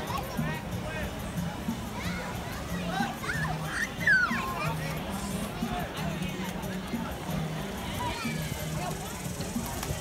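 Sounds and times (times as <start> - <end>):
children shouting: 2.0 - 4.9.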